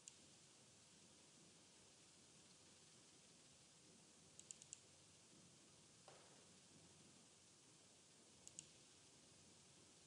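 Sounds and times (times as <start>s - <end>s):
computer mouse clicks: 0.0s - 0.3s, 4.4s - 4.9s, 8.4s - 8.8s.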